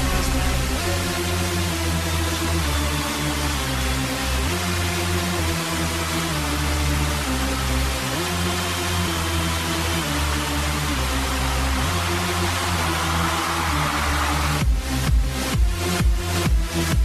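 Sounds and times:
swell of noise: 0.0s - 3.9s
sustained bass chords: 0.0s - 12.9s.

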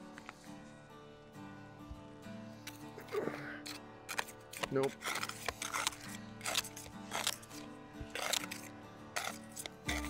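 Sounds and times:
background music: 0.0s - 10.0s
putty knife scraping shingles: 3.6s - 10.0s.

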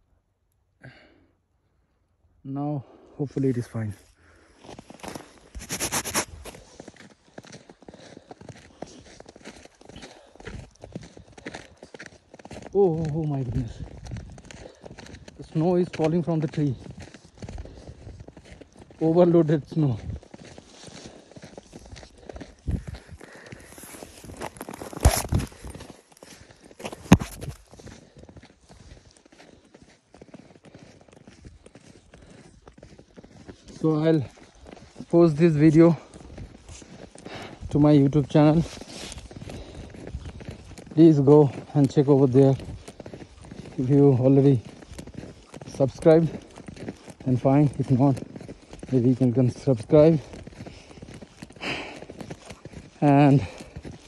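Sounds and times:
footsteps crunching in snow: 3.2s - 54.0s.

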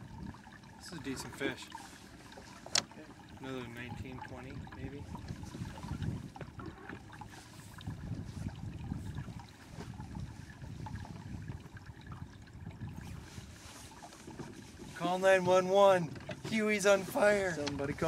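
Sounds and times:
water lapping against boat hull: 0.0s - 18.0s.

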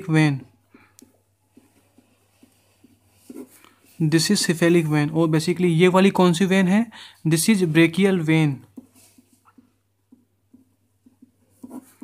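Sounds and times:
pen writing on paper: 8.8s - 12.0s.

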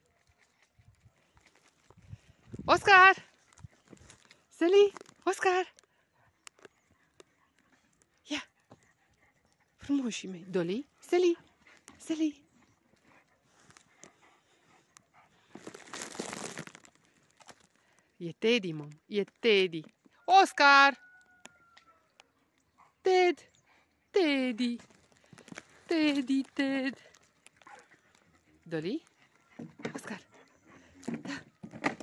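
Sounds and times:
rustling: 13.5s - 18.1s, 24.7s - 28.4s.

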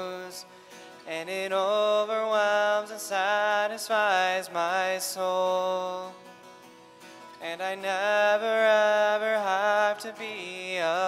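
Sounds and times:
man singing: 0.0s - 6.3s, 7.2s - 11.0s
acoustic guitar: 0.0s - 11.0s.

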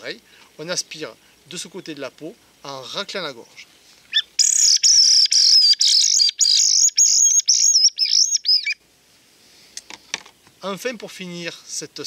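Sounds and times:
predator call squealing: 4.1s - 8.8s.

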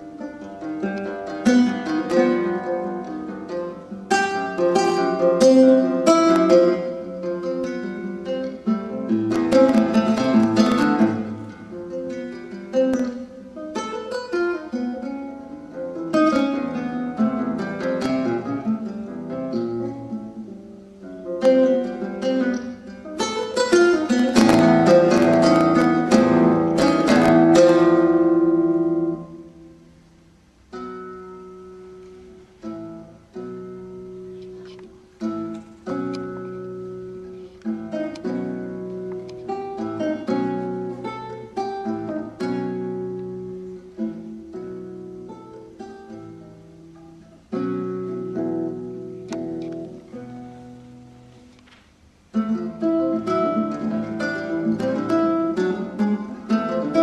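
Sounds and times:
classical guitar fingerstyle: 0.0s - 57.0s.

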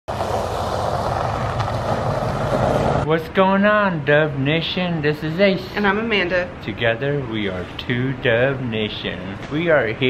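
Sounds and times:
low engine hum: 0.1s - 3.1s
even rushing noise: 0.1s - 3.2s.

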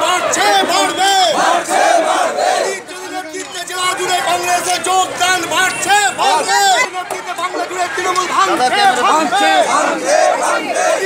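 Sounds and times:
crowd of men shouting slogans: 0.0s - 4.7s, 5.4s - 11.0s.

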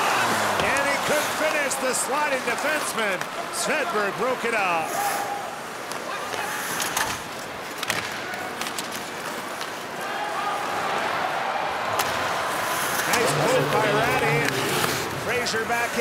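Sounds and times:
skates scraping on ice: 0.0s - 7.9s, 12.5s - 16.0s
crowd noise: 0.0s - 16.0s
hockey sticks and puck clacking: 0.1s - 3.8s, 5.8s - 10.0s, 11.9s - 16.0s.

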